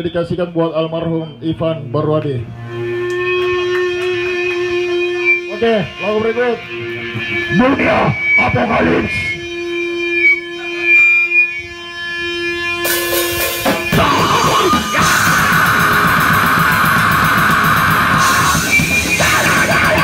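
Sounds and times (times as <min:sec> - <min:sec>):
grindcore band playing: 0:02.4 - 0:20.0.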